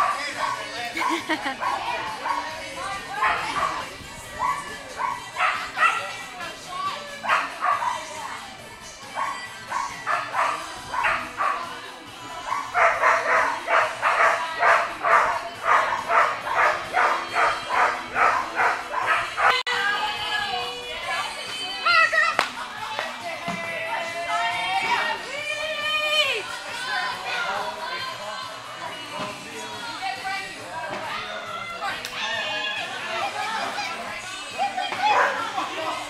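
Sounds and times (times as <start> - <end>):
dogs barking: 0.0 - 6.2, 7.2 - 8.2, 9.1 - 11.8, 12.4 - 19.6, 34.9 - 35.6.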